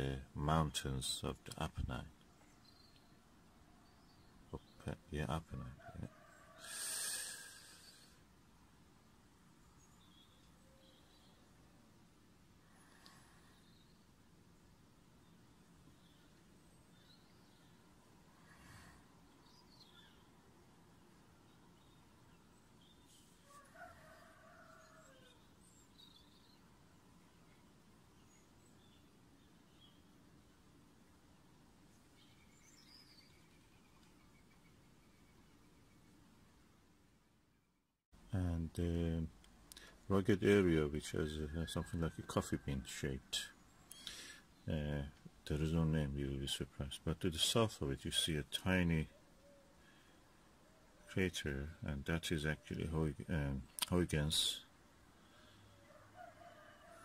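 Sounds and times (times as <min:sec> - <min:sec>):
person breathing: 0:06.6 - 0:08.2, 0:12.6 - 0:13.8, 0:18.4 - 0:19.2, 0:39.7 - 0:40.0, 0:43.9 - 0:44.5, 0:55.2 - 0:55.8.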